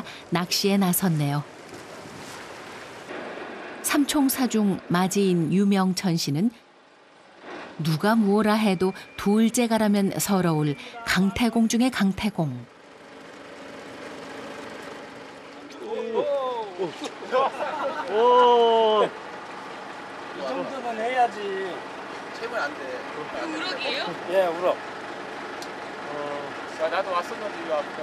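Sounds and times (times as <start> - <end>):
boat engine idling: 0.0 - 28.0.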